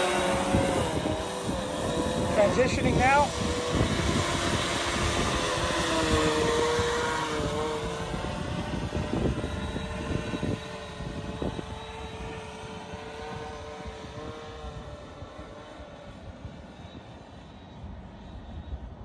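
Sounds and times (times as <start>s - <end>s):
drone propellers whirring: 0.0s - 19.0s.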